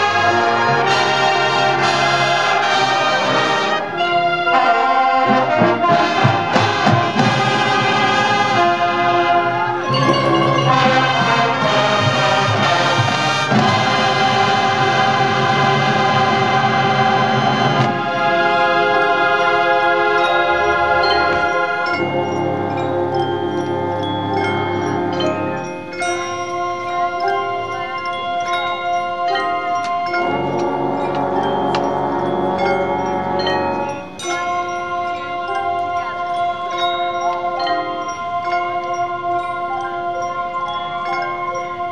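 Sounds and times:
marching band sustained chord: 0.0 - 28.1, 29.9 - 36.8
chimes and mallet keyboards: 9.5 - 13.6, 17.4 - 41.9.

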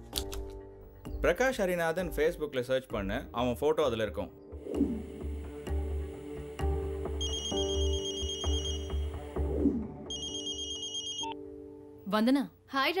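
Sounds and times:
electronic telephone ringer warbling: 7.2 - 9.0, 10.1 - 11.4.

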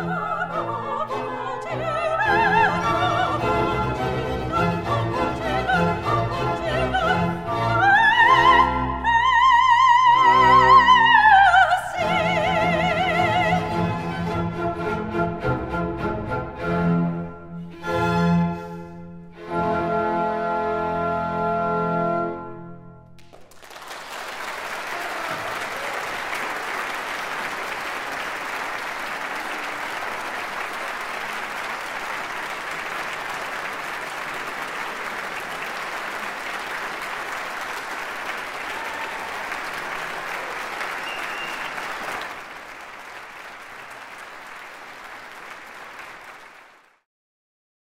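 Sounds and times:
audience applauding: 23.2 - 47.0.

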